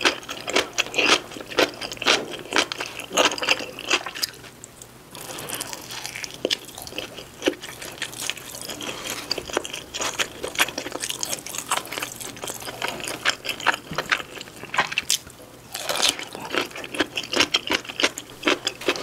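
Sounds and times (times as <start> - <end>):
close-miked chewing: 0.0 - 19.0.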